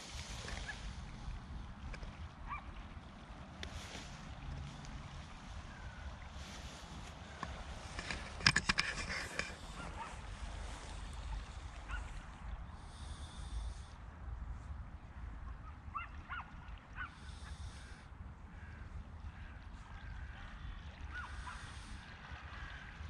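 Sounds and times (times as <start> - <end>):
footsteps through grass and nettles: 3.6 - 8.0.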